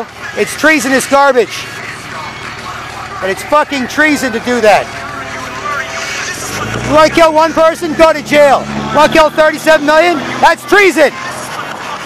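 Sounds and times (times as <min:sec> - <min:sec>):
cars and trucks passing: 0:00.0 - 0:12.0
vehicle engine hum: 0:00.0 - 0:12.0.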